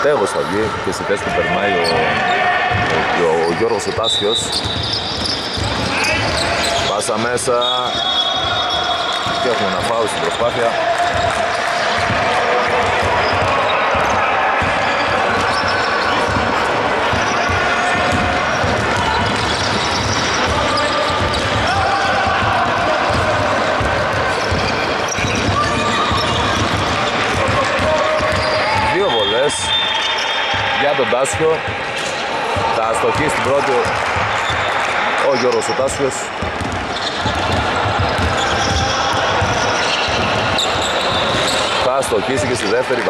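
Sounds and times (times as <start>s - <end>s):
players' voices echoing: 0.0s - 43.0s
basketball bouncing on hardwood: 4.5s - 6.4s, 17.1s - 20.6s, 36.4s - 40.6s.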